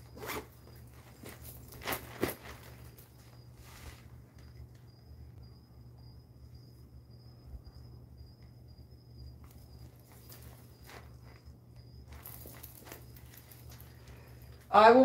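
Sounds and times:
handbag rustling and clicking: 0.0 - 4.0, 9.4 - 14.7
steady low hum: 0.0 - 15.0
thin high whine: 0.0 - 15.0.

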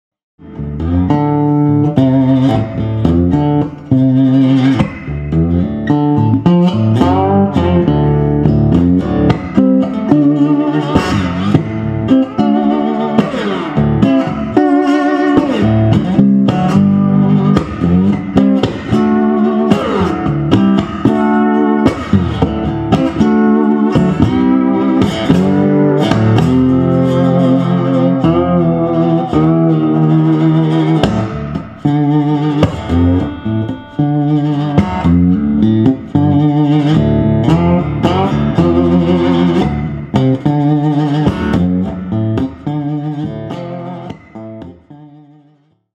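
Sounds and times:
slide lap steel guitar: 0.4 - 45.9.

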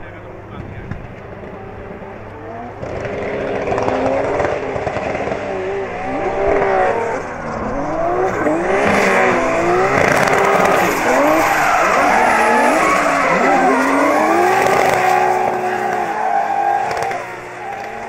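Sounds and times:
car engines revving: 0.0 - 18.0
tyres squealing: 10.0 - 18.0.

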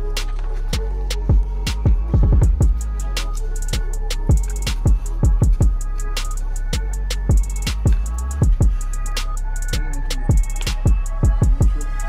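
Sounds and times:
hip hop music: 0.0 - 12.0.

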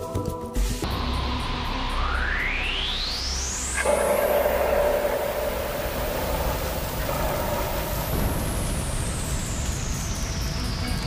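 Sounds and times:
rushing noise: 1.0 - 11.0
high whistling tone: 1.6 - 11.0.

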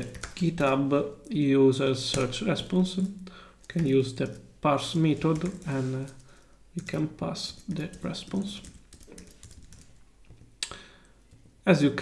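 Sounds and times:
typing on computer keyboard: 0.0 - 0.8, 2.1 - 4.5, 5.1 - 11.5.

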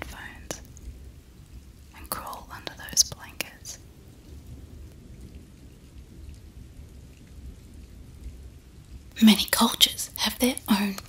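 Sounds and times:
faint steady rain: 0.0 - 11.0
low rumble: 0.0 - 11.0.

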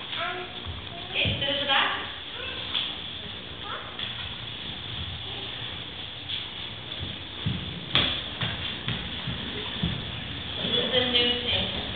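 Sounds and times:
soft footfalls on studio floor: 6.0 - 11.9.

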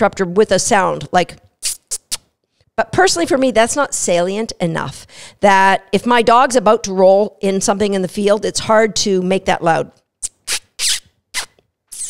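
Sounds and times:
woman making kissing sounds: 1.6 - 2.3, 10.2 - 12.0.

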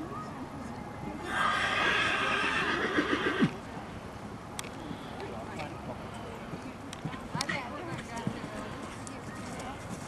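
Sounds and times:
horse neighing: 1.3 - 3.6.

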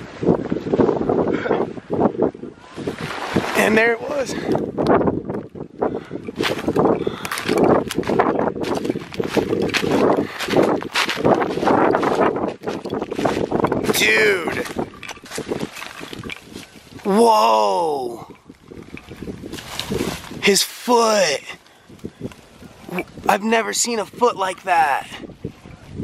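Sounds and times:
footsteps crunching through dry stubble: 7.4 - 17.1, 19.2 - 20.4.

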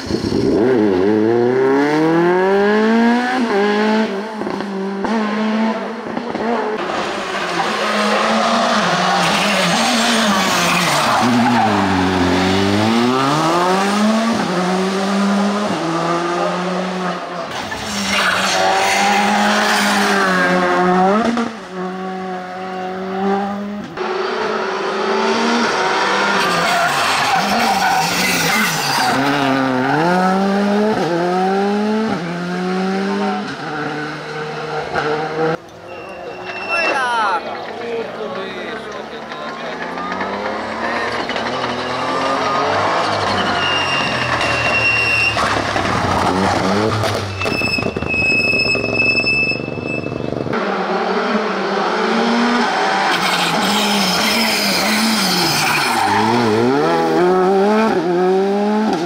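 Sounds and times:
rally cars revving: 0.0 - 59.0
tyre squeal: 17.6 - 20.6, 26.4 - 29.5, 35.8 - 37.4, 40.8 - 50.5, 52.8 - 56.8.

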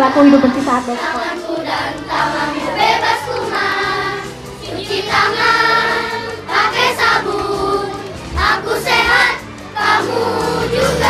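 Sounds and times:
backing music track: 0.0 - 11.0
children singing together: 0.0 - 11.0.

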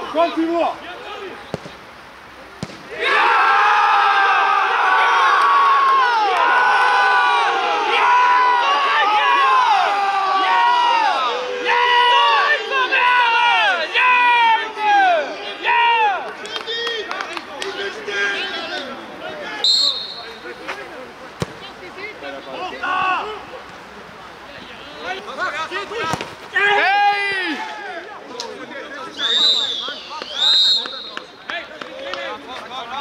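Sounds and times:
football being kicked: 2.6 - 2.8, 21.4 - 21.6
men yelling and cheering: 2.9 - 20.6, 22.5 - 23.7, 25.0 - 29.3.

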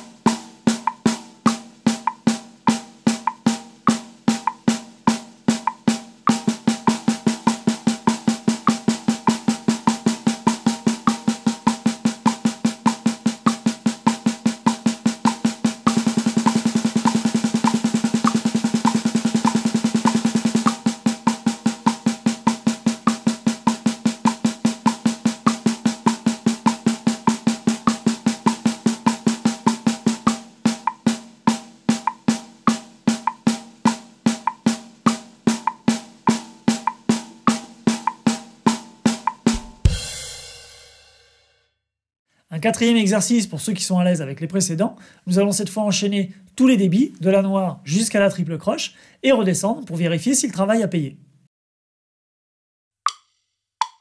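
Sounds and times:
snare drum strokes: 0.0 - 41.2
metronome click: 15.3 - 20.8, 30.8 - 31.0.

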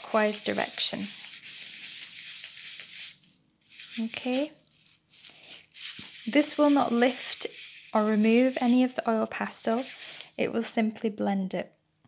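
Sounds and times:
tissue paper rustling on paper: 0.0 - 10.4.

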